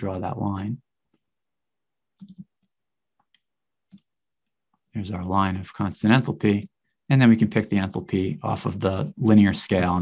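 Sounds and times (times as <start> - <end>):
mouse clicks: 2.2 - 4.1.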